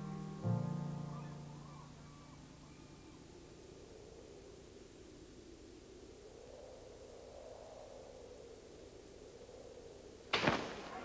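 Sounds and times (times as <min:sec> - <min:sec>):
piano chord ringing: 0:00.0 - 0:03.4
faint high bird calls: 0:00.0 - 0:04.9.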